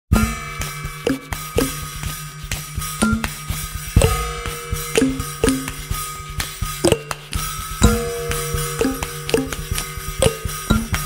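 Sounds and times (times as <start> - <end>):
acoustic drum beat: 0.2 - 11.0.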